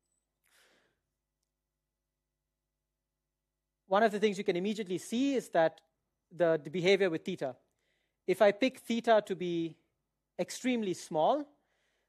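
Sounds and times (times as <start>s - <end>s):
faint breath: 0.4s - 1.1s, 7.8s - 8.2s, 11.6s - 12.0s.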